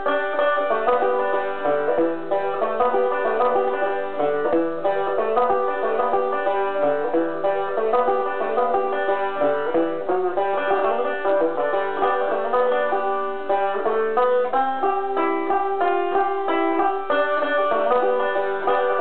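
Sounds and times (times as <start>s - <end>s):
banjo plucked notes: 0.0s - 19.0s.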